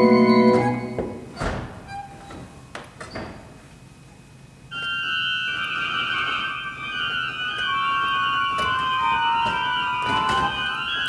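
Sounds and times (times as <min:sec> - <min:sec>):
pipe organ cluster chord: 0:00.0 - 0:01.0, 0:04.8 - 0:11.0.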